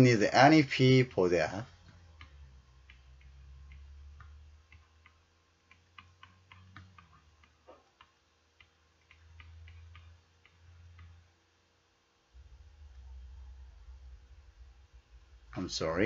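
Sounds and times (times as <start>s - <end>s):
low steady rumble: 0.0s - 16.0s
stylus tapping on pen tablet: 1.8s - 11.2s.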